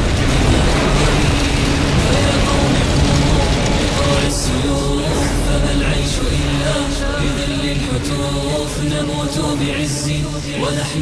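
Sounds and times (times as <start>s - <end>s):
dense low rumble: 0.0s - 11.0s
film soundtrack over loudspeakers: 0.0s - 11.0s.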